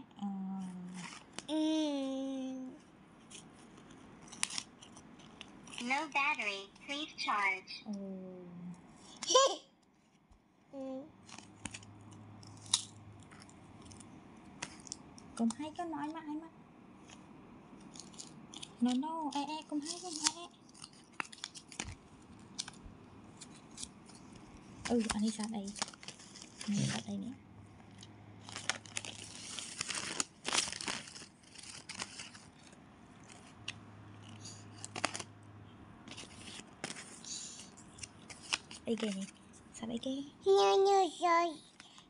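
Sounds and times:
card rustling and clicking: 3.2s - 6.6s, 11.2s - 16.2s, 17.8s - 35.3s, 36.0s - 39.6s
snack packet crackling: 4.2s - 6.5s, 17.8s - 22.8s, 23.4s - 27.2s, 27.9s - 35.3s, 36.1s - 39.4s
person speaking: 5.8s - 8.6s, 26.6s - 27.4s.

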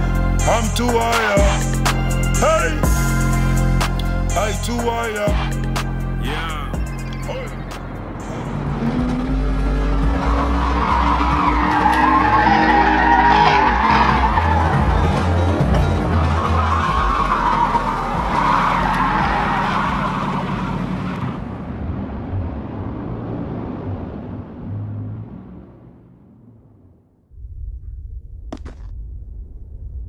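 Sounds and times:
music bass: 0.0s - 19.6s
car tyres screeching: 0.0s - 26.0s
car engine revving: 0.0s - 27.0s.

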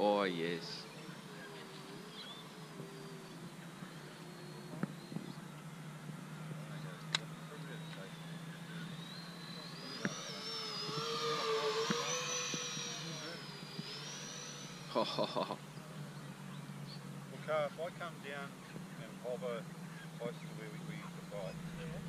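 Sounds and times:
model jet fans whining: 0.0s - 22.0s.

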